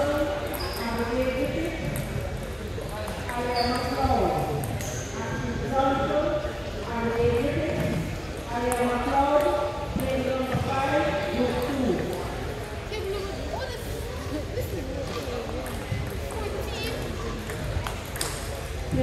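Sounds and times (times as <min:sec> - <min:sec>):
voices talking in a hall: 0:00.0 - 0:19.0
table tennis balls clicking: 0:17.4 - 0:18.8.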